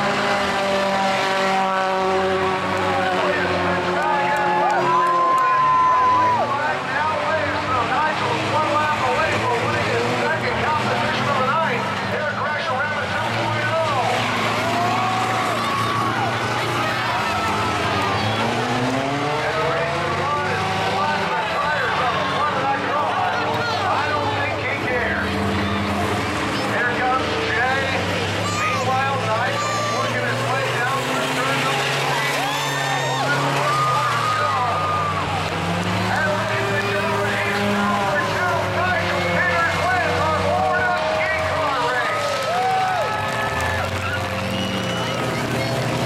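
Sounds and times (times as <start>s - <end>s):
race car engines revving: 0.0s - 46.0s
spectators talking: 0.0s - 46.0s.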